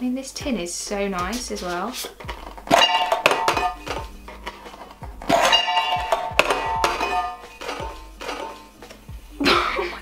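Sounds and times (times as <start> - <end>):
music: 0.0 - 10.0
metal tin clinking and knocking: 1.3 - 9.0.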